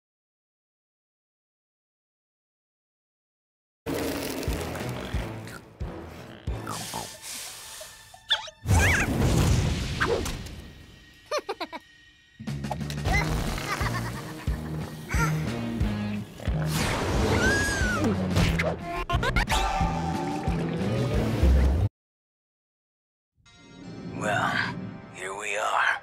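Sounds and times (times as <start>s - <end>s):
cartoon music: 8.2s - 9.2s, 17.3s - 20.8s.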